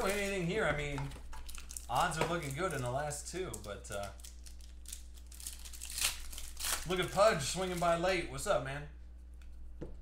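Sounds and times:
sharp foil crackles: 0:00.0 - 0:00.6, 0:01.4 - 0:02.9, 0:03.5 - 0:08.0
foil wrapper crinkling: 0:00.0 - 0:08.2.

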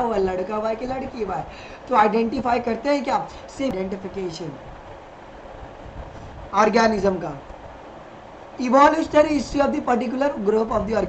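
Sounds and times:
low room noise: 0:00.0 - 0:11.0
man lecturing: 0:06.5 - 0:07.5, 0:08.6 - 0:11.0.

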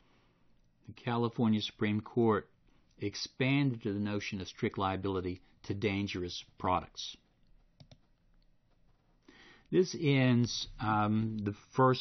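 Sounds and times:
person speaking: 0:00.8 - 0:08.1, 0:09.7 - 0:12.0
computer mouse clicks: 0:07.2 - 0:09.1.

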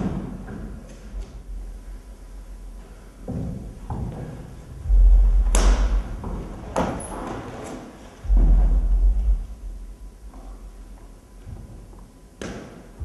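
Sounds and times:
sharp knocks: 0:03.4 - 0:07.0, 0:08.2 - 0:10.5
heavy booming thuds: 0:04.8 - 0:07.0, 0:08.2 - 0:10.7.

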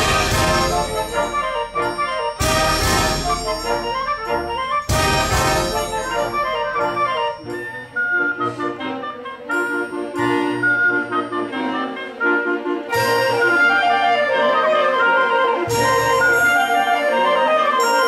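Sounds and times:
small orchestra playing classical music: 0:00.0 - 0:18.0.

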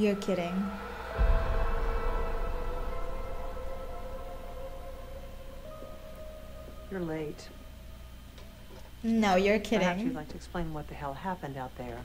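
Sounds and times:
deep boom: 0:00.0 - 0:08.2
sustained orchestral tones: 0:00.0 - 0:09.8.

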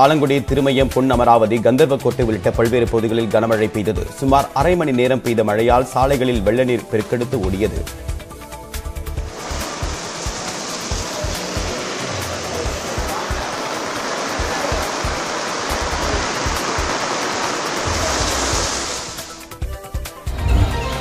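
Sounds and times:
background music: 0:00.0 - 0:21.0
heavy rain pouring: 0:09.1 - 0:19.6.

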